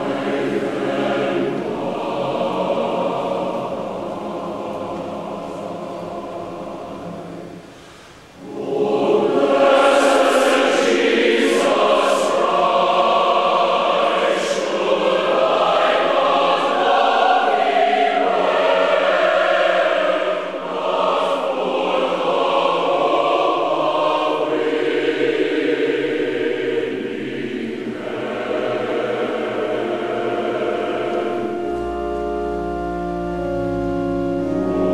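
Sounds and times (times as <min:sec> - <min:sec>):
choir breath: 0:00.0 - 0:31.7
church choir singing: 0:00.0 - 0:34.9.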